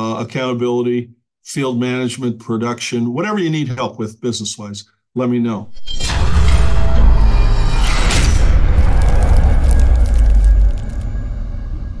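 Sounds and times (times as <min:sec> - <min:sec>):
deep boom and low rumble: 0:07.2 - 0:12.0
fine crackling ticks: 0:08.8 - 0:11.1.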